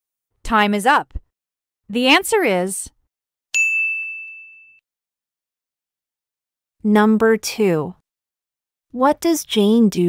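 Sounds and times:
bright ding: 3.6 - 4.8.

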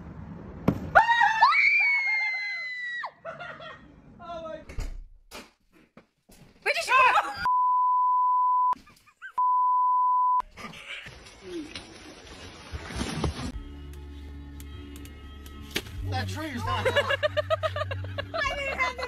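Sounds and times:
censor bleeps: 7.5 - 8.8, 9.4 - 10.4.

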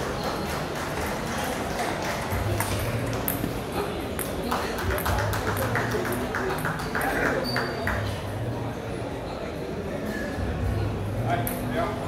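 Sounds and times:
chatter of busy hall: 0.0 - 12.0.

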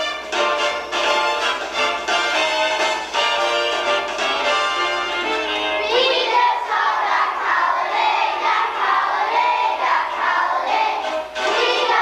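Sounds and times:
children's choir singing: 5.1 - 12.0.

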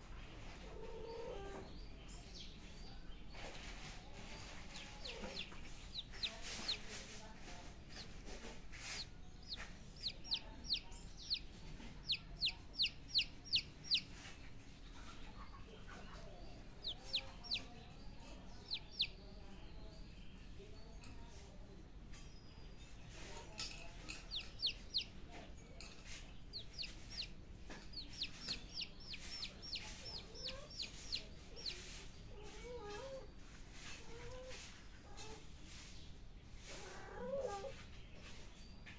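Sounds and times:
chick peeping: 0.4 - 38.9.

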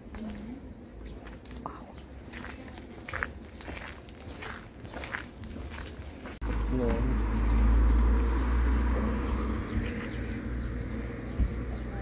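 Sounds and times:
footsteps crunching on gravel: 0.0 - 7.3.

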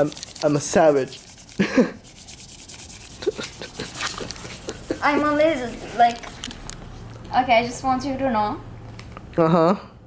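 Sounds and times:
rubbing and rustling: 0.0 - 7.1.

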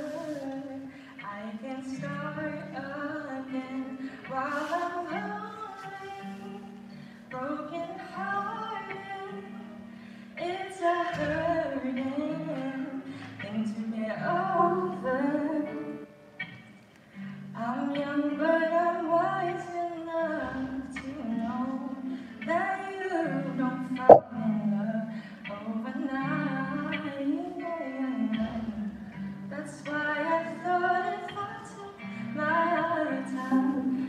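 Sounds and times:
person singing: 0.0 - 6.8
acoustic guitar: 0.0 - 34.0.

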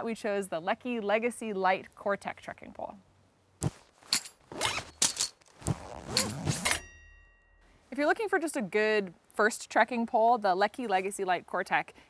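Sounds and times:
faint high ringing tone: 6.7 - 7.8.

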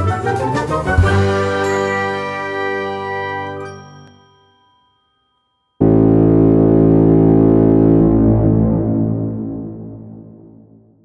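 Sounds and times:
bell-like struck chord: 5.8 - 7.7.

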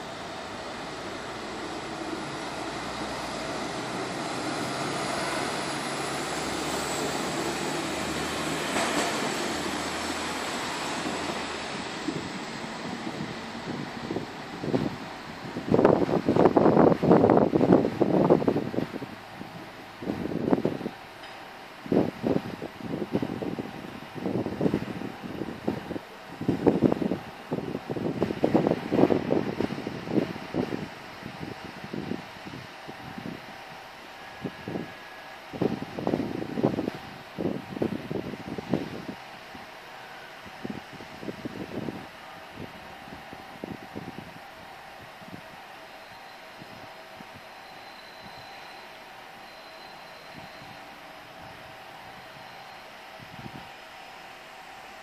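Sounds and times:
wind buffeting microphone: 0.0 - 21.0, 21.8 - 39.7, 40.4 - 45.7, 46.6 - 47.5, 53.2 - 53.7
faint diesel railbus hum: 0.0 - 55.0.

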